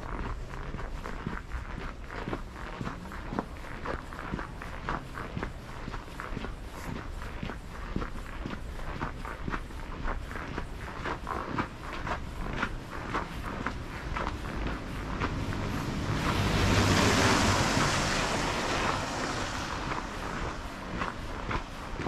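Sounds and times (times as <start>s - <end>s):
footsteps crunching on snow: 0.0s - 22.0s.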